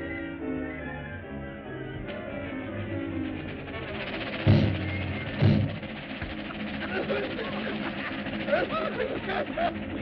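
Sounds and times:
orchestral cartoon music: 0:00.0 - 0:10.0.

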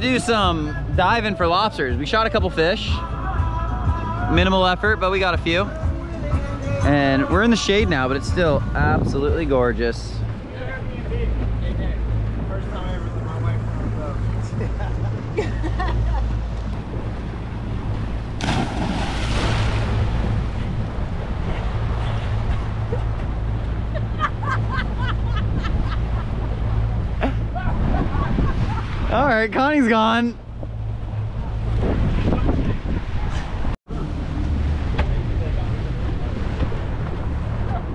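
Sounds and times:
steady low rumble: 0:00.0 - 0:37.9
person splashing into water: 0:18.4 - 0:20.2.

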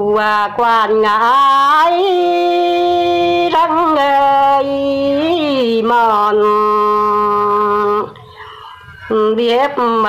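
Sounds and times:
woman singing folk song: 0:00.0 - 0:08.2, 0:09.0 - 0:10.0
singer breathing: 0:08.2 - 0:09.0.

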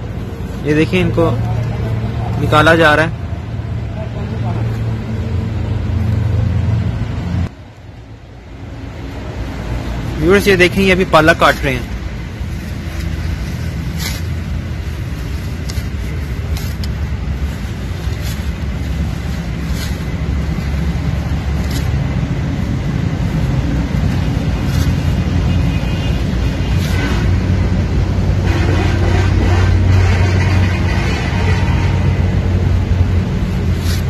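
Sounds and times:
steady low rumble: 0:00.0 - 0:34.0
sickle cutting stems: 0:11.4 - 0:27.5, 0:33.2 - 0:34.0.

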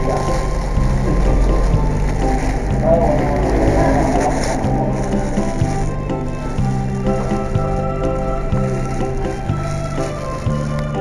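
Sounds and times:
saxophone music with backing track: 0:00.0 - 0:11.0.

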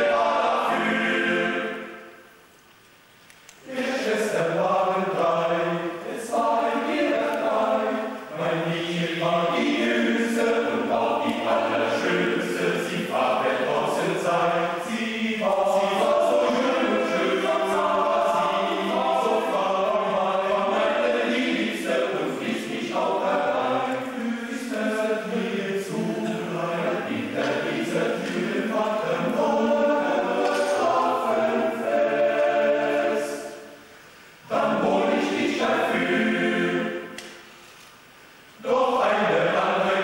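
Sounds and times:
male choir singing a cappella: 0:00.0 - 0:02.2, 0:03.6 - 0:33.8, 0:34.4 - 0:37.2, 0:38.6 - 0:40.0.

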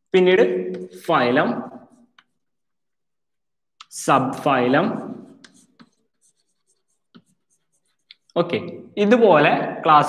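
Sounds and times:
chalk scratching on blackboard: 0:01.6 - 0:02.8, 0:04.4 - 0:08.9.

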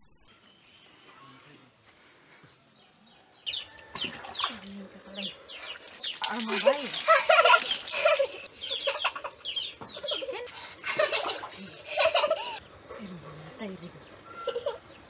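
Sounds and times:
birds chirping: 0:00.0 - 0:15.0
poured water splashing: 0:04.0 - 0:09.4
chickens clucking: 0:07.1 - 0:15.0.

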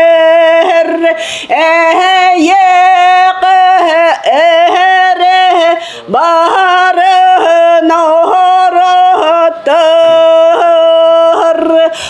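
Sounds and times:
woman singing long notes: 0:00.0 - 0:12.0.

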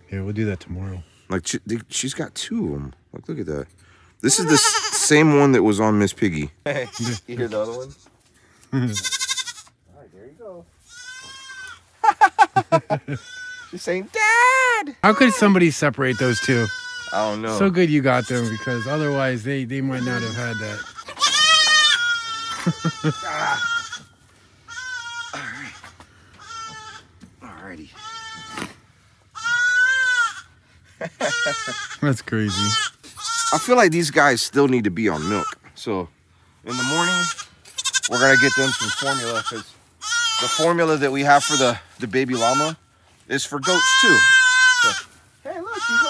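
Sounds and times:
baby goats bleating: 0:04.2 - 0:05.3, 0:06.7 - 0:09.8, 0:10.8 - 0:11.9, 0:13.1 - 0:27.2, 0:27.9 - 0:28.7, 0:29.3 - 0:30.6, 0:31.2 - 0:33.8, 0:35.0 - 0:35.7, 0:36.7 - 0:42.8, 0:43.5 - 0:46.0.

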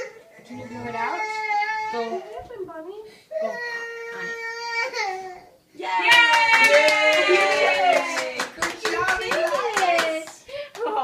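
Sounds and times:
hands clapping: 0:06.0 - 0:11.0.

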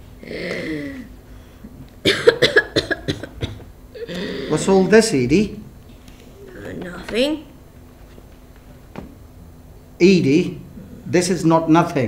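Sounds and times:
woman coughing harshly: 0:02.0 - 0:04.7.

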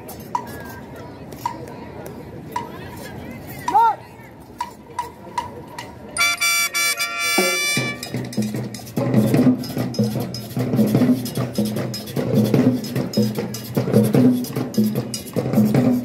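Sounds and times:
long high held note: 0:06.2 - 0:08.1
low brass playing: 0:06.2 - 0:08.2
drums beating: 0:06.2 - 0:16.0.

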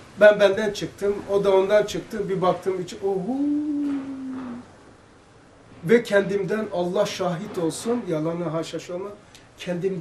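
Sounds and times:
man speaking: 0:00.2 - 0:04.7, 0:05.8 - 0:10.0
man's drawn-out ohhh: 0:03.3 - 0:04.7.

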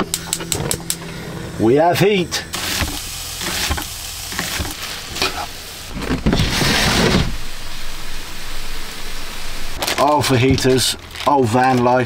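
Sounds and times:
meat and vegetables sizzling in a pan: 0:02.5 - 0:05.9.

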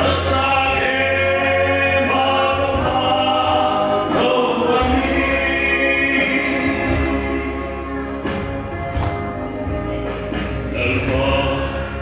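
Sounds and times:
man singing through microphone: 0:00.0 - 0:07.7, 0:10.7 - 0:12.0
electronic keyboard chords: 0:00.0 - 0:12.0
steady bass: 0:00.0 - 0:12.0.

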